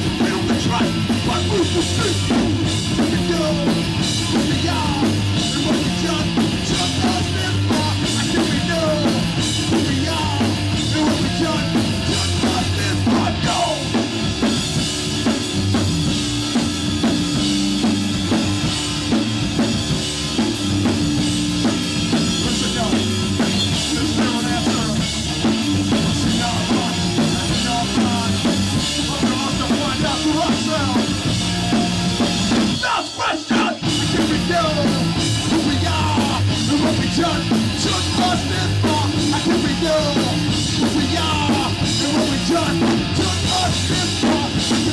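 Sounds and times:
punk band playing live: 0.0 - 44.9.

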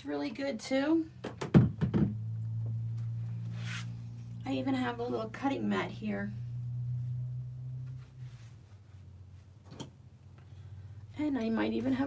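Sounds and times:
low steady hum: 0.0 - 12.0
handling plastic and wool mats: 2.8 - 4.1.

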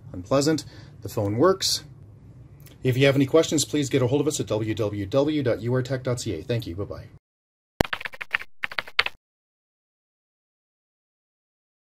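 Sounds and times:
keyboard typing clicks: 7.8 - 9.2.

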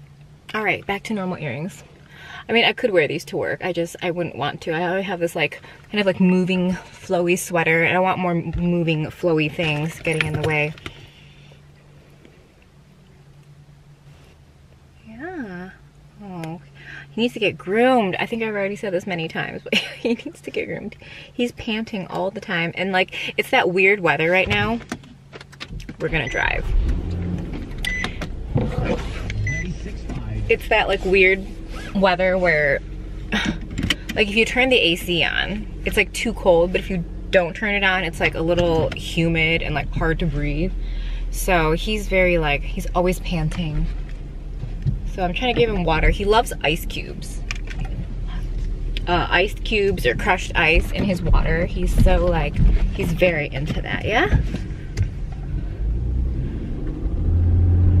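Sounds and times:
car engine idling: 0.0 - 58.0
low hum: 0.0 - 58.0
road noise: 0.0 - 58.0
high electronic chime beeps: 29.4 - 29.8.

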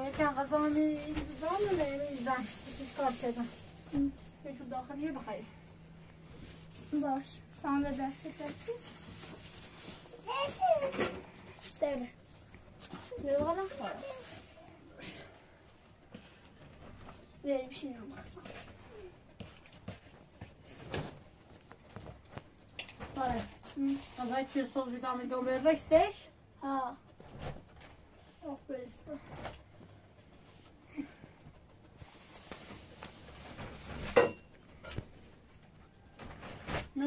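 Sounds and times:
women and child talking: 13.2 - 14.4.

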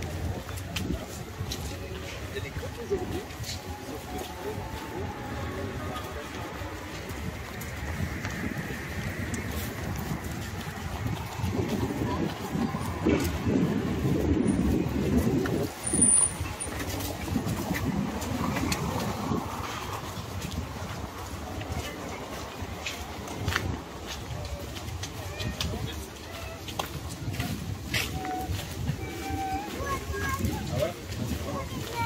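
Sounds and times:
indistinct voices of passers-by: 0.0 - 32.0.

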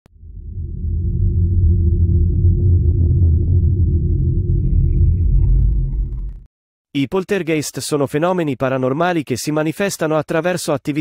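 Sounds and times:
deep rumbling drone: 0.0 - 6.5.

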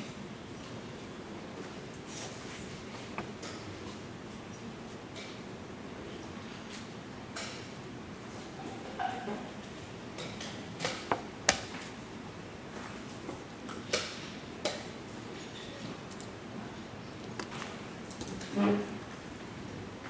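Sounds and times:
room noise: 0.0 - 20.0.

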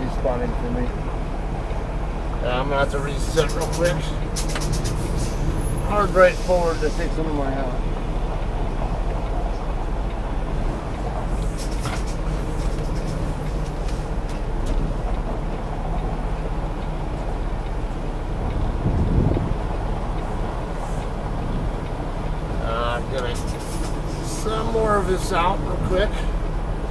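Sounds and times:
diesel truck engine drone: 0.0 - 26.9.

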